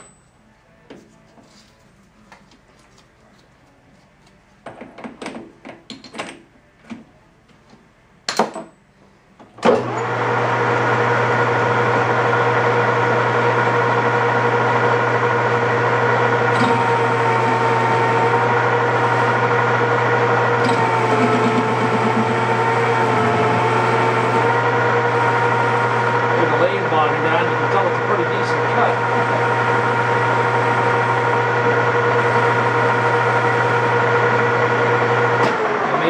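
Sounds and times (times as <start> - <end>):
metal lathe running: 9.8 - 36.0.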